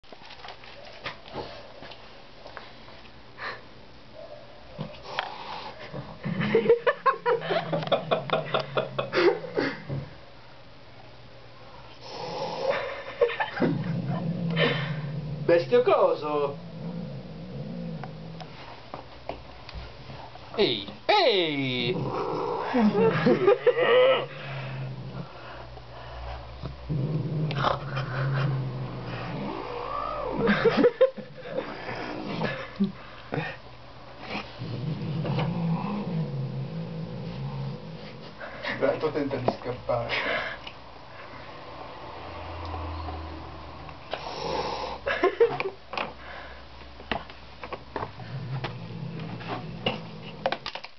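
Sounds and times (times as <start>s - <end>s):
cat growling: 12.0s - 18.6s, 21.7s - 25.7s, 26.6s - 32.8s, 34.2s - 38.8s, 48.2s - 50.7s.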